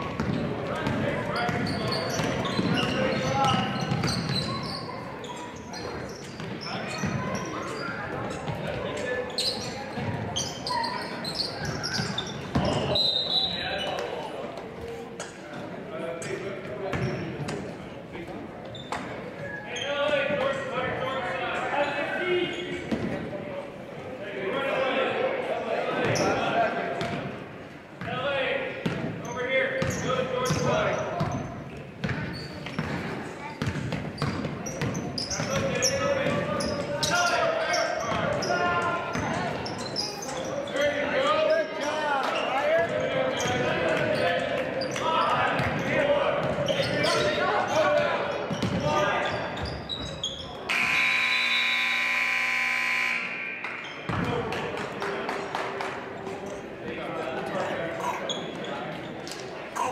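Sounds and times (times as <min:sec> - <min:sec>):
sneakers squeaking: 0:00.0 - 0:15.7, 0:16.3 - 0:17.8, 0:18.4 - 0:23.3, 0:26.0 - 0:26.4, 0:28.8 - 0:55.0, 0:58.0 - 0:59.9
scoreboard horn: 0:50.7 - 0:53.8.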